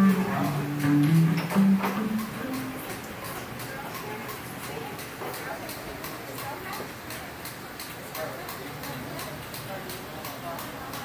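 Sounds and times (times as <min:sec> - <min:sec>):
hi-hat ticking: 0:00.0 - 0:04.1
indistinct voices: 0:00.0 - 0:06.6.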